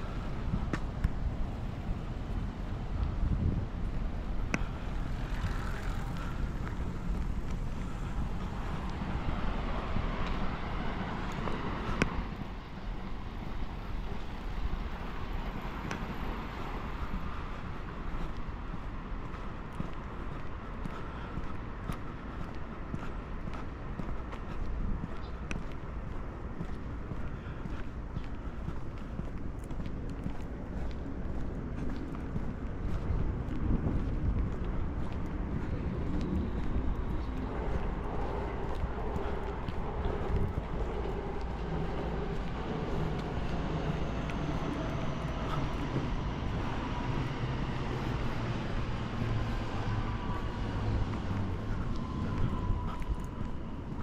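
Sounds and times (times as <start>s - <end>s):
road traffic hum: 0.0s - 54.0s.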